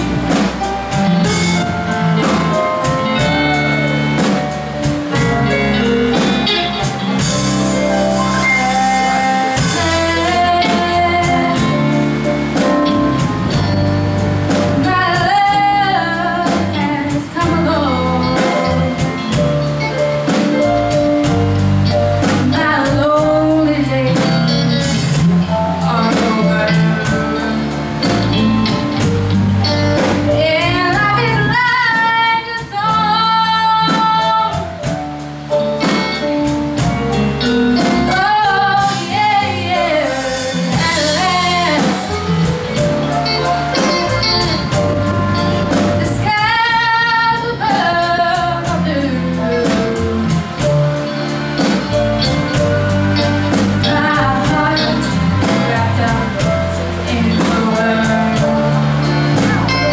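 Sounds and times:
drum kit: 0:00.0 - 0:59.9
electric guitar: 0:00.0 - 0:59.9
live band playing: 0:00.0 - 0:59.9
girl singing: 0:30.4 - 0:34.6, 0:46.0 - 0:50.2.

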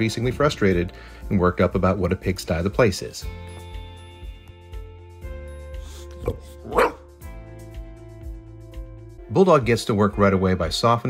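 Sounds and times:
background music: 0:00.0 - 0:11.0
dog barking: 0:06.2 - 0:07.1.

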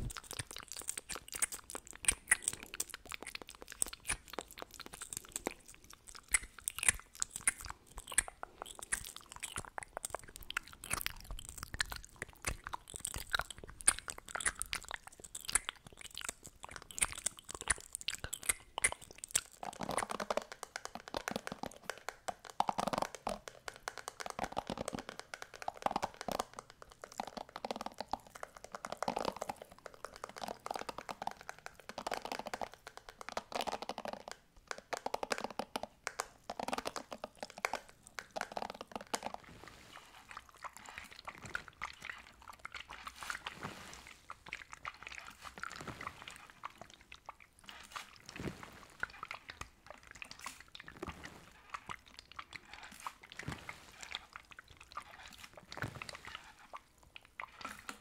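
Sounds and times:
crackling mouth and lip sounds: 0:00.0 - 0:58.0.

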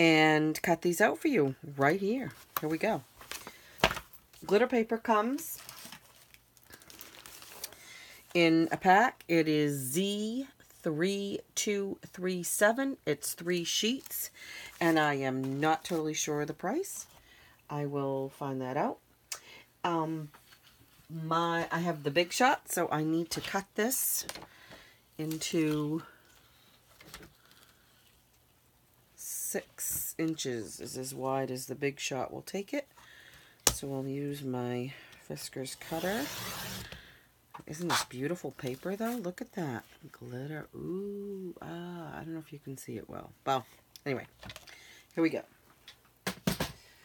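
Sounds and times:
plastic sleeve crinkling: 0:05.2 - 0:07.9
faint paper rustle: 0:05.4 - 0:08.4.

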